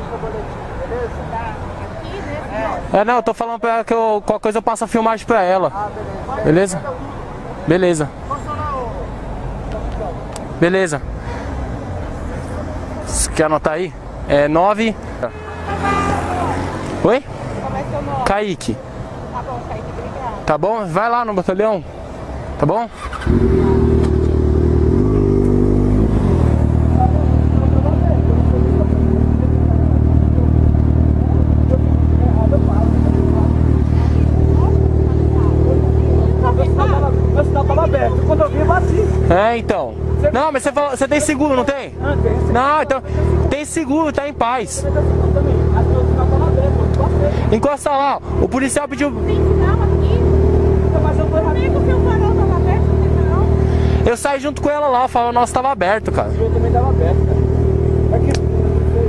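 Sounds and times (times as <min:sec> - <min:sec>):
faint voices talking: 0:00.0 - 0:24.0, 0:26.0 - 0:59.0
motorcycle engine running: 0:23.0 - 0:40.6, 0:48.2 - 0:54.8, 0:56.0 - 0:59.0.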